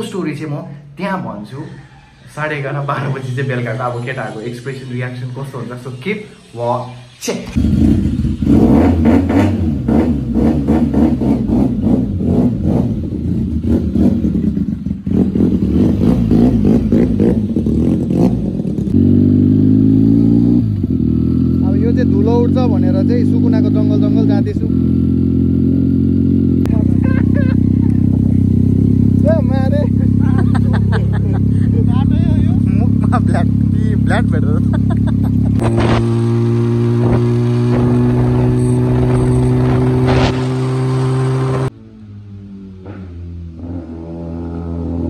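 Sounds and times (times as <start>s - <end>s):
motorcycle engine revving: 1.4s - 45.0s
person's voice: 26.7s - 28.1s, 29.2s - 35.5s.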